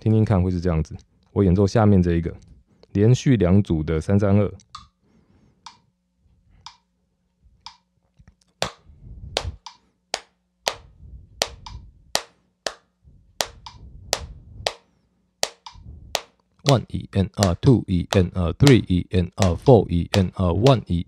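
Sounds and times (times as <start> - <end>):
hand claps: 8.6 - 8.8, 9.4 - 10.8, 11.4 - 12.8, 17.4 - 17.6
metronome clicking: 13.4 - 14.8, 15.4 - 16.8, 17.4 - 18.8.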